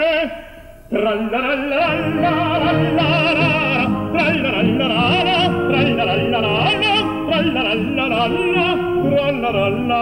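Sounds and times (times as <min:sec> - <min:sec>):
operatic singing duet: 0:00.0 - 0:10.0.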